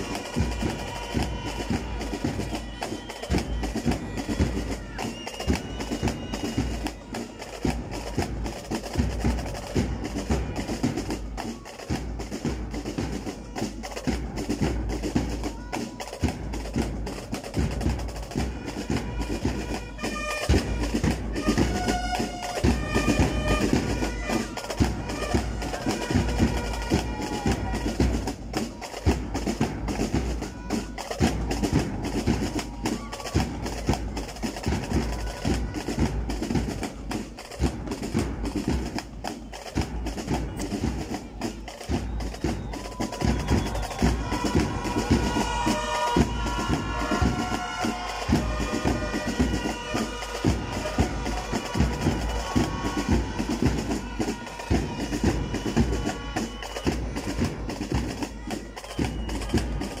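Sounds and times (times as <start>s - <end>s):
drums: 0.0s - 60.0s.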